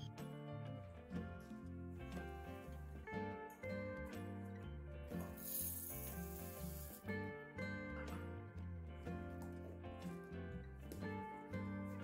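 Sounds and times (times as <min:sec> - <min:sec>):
background music: 0:00.0 - 0:12.0
sugar pouring into metal jar: 0:05.2 - 0:07.0.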